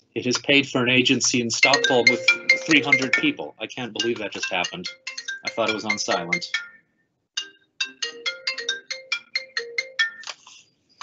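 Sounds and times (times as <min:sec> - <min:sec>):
phone ringtone with bell-like notes: 0:01.6 - 0:10.4.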